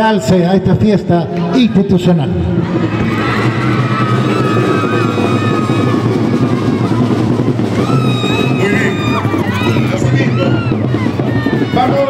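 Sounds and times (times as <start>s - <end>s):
marching band playing: 2.5s - 12.0s.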